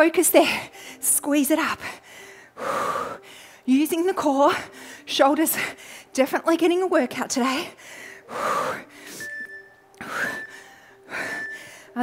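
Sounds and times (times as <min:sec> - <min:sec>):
woman breathing hard: 0:01.8 - 0:03.7, 0:04.6 - 0:06.2, 0:07.6 - 0:12.0.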